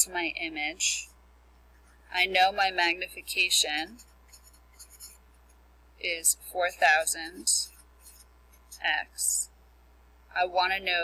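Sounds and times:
marker scratching on paper: 3.7 - 5.4, 6.7 - 9.0.

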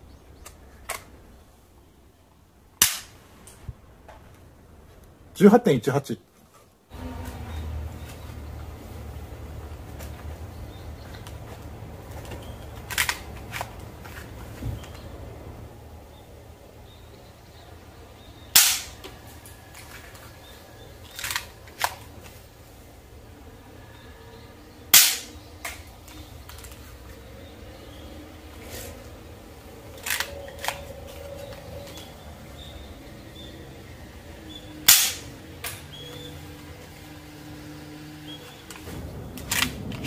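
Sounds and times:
toy pistol firing pop: 18.6 - 19.0, 25.0 - 25.3, 34.9 - 35.8.

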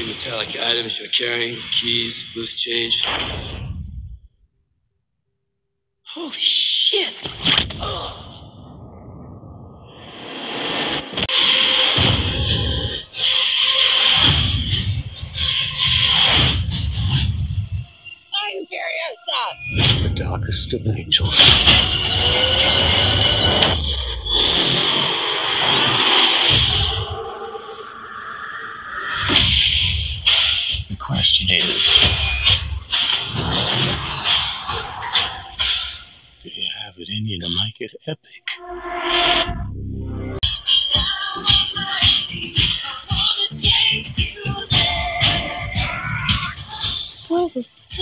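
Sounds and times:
heavy low booms: 19.6 - 24.6, 38.6 - 40.4
dense sound effects: 19.6 - 34.4, 36.4 - 40.6
rising whoosh: 22.4 - 29.8
dramatic trailer music: 38.6 - 40.4
trailer music: 38.6 - 46.6.

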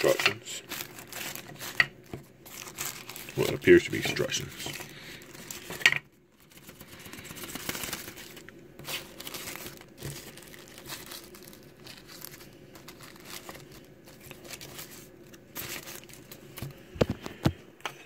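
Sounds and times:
paper and packaging crinkling: 0.0 - 17.6.

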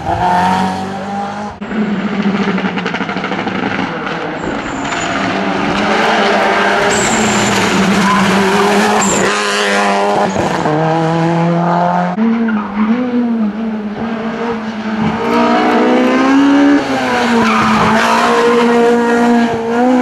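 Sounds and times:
car engine: 0.0 - 20.0
rally car engine at high revs: 0.0 - 20.0.

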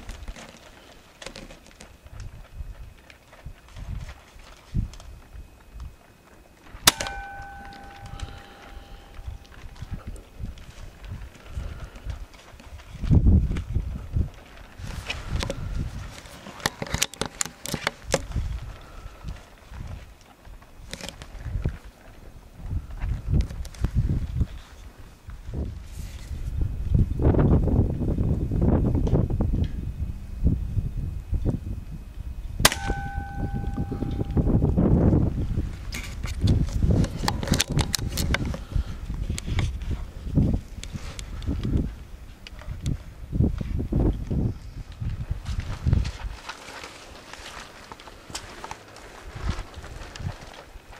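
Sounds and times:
clicks and crackles in undergrowth: 0.0 - 29.2, 32.1 - 50.9
rumbling handling noise: 0.0 - 50.9
air rifle shot: 32.6 - 34.5.

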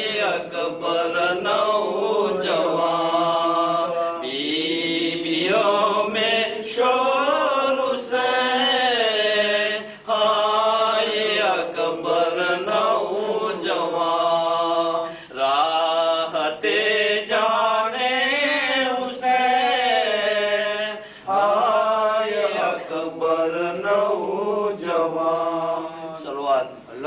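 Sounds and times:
man chanting a lament: 24.4 - 27.0.

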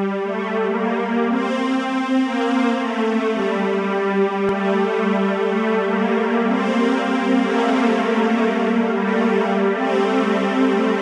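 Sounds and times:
synthesizer chords: 0.0 - 11.0.

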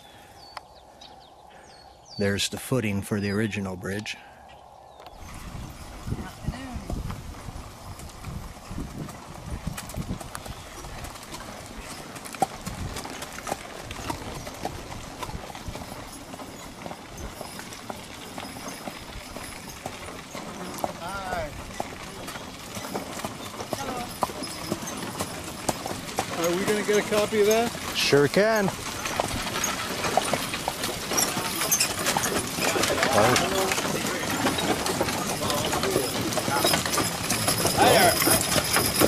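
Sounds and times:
horse hooves clip-clopping on dirt: 4.9 - 39.0.

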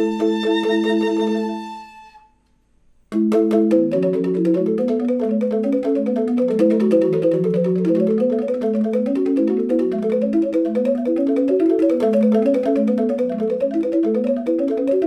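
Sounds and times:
bamboo xylophones playing: 0.0 - 2.3, 3.1 - 15.0.

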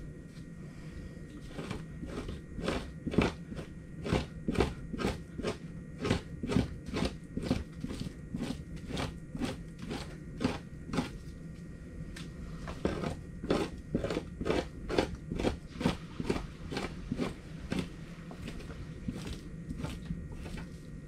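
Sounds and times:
knife scraping hide: 1.4 - 11.3, 12.6 - 21.0.

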